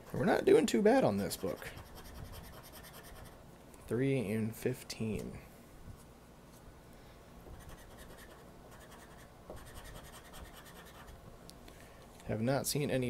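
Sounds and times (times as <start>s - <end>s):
scratching lottery ticket: 7.6s - 11.1s.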